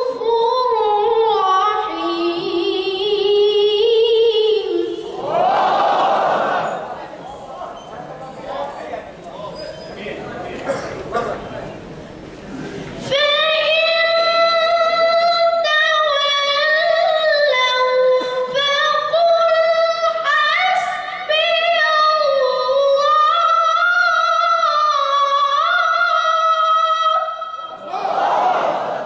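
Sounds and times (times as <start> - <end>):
boy reciting through a microphone: 0.0 - 5.2, 12.4 - 27.8.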